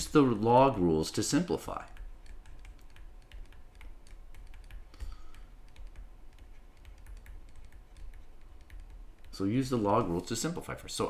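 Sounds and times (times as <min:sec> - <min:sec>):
stylus tapping on tablet screen: 0:01.6 - 0:09.5.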